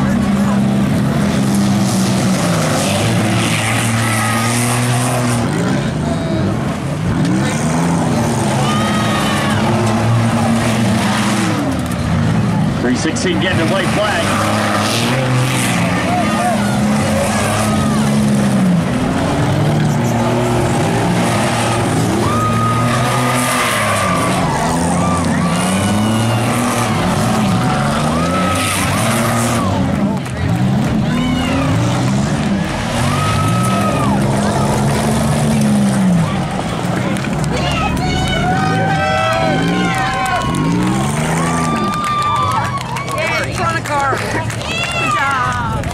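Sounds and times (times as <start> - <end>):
race car engines revving: 0.0 - 45.9.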